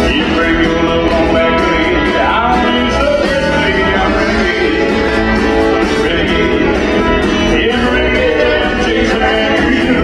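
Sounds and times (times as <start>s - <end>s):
country band playing: 0.0s - 10.0s
man singing: 0.0s - 10.0s.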